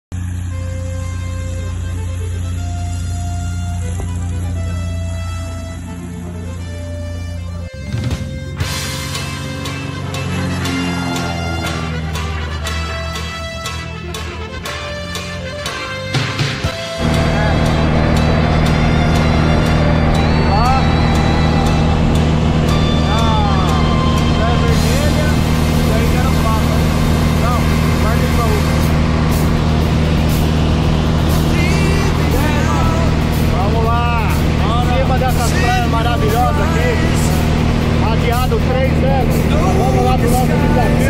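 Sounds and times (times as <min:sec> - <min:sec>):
propeller plane engine drone: 0:00.0 - 0:41.0
voices talking: 0:16.8 - 0:41.0.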